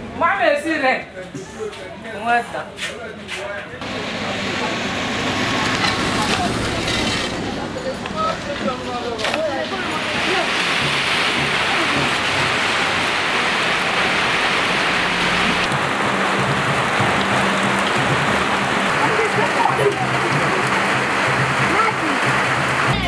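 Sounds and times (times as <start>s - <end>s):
faint voices: 1.0s - 23.0s
steady rain pouring: 3.8s - 23.0s.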